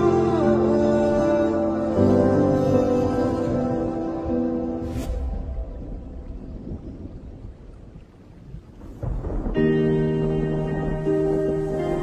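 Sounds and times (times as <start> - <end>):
synth pad chords: 0.0 - 7.3, 9.0 - 12.0
low rumbling rain noise: 0.0 - 12.0.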